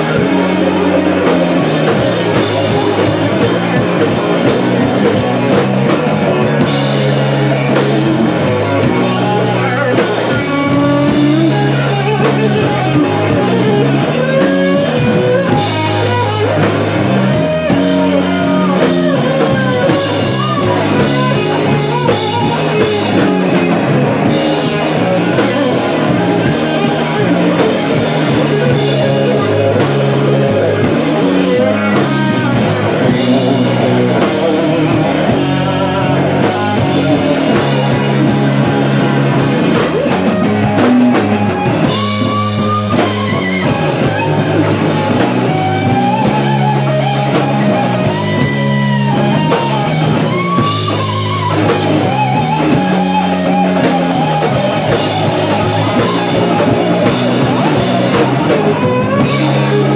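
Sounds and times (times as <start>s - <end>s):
drum kit: 0.0s - 59.9s
electric bass line: 0.0s - 59.9s
electric guitar lead: 0.0s - 59.9s.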